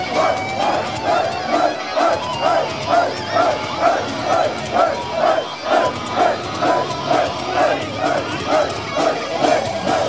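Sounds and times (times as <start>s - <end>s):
crowd shouting in rhythm: 0.0s - 10.0s.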